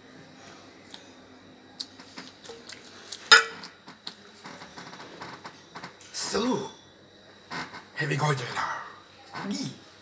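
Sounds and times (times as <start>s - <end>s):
crockery and cutlery clinking: 3.3s - 3.7s.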